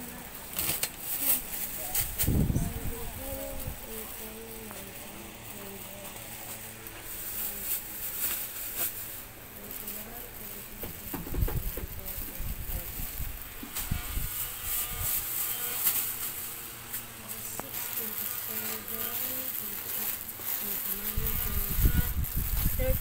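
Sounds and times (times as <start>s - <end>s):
background voices talking: 0.0s - 23.0s.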